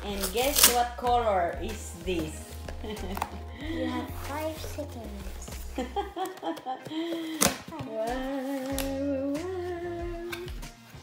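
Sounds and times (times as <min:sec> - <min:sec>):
person humming held notes: 0:06.9 - 0:10.6.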